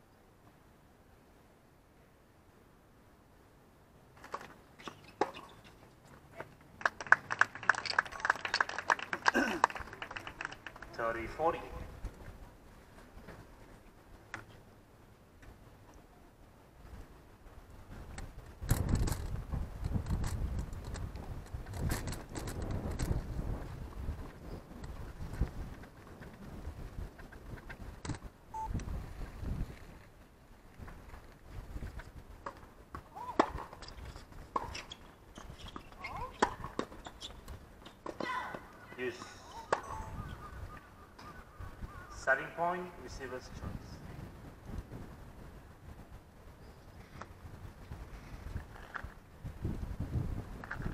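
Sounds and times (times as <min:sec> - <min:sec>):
players calling: 0:06.3 - 0:11.8, 0:37.8 - 0:43.6
wind rumble on microphone: 0:11.0 - 0:14.8, 0:15.5 - 0:37.8, 0:39.9 - 0:50.9
tennis balls struck with rackets: 0:32.4 - 0:33.8.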